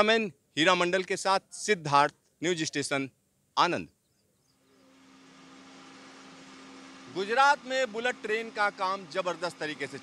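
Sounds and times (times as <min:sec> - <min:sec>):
machinery hum: 0:04.6 - 0:10.0.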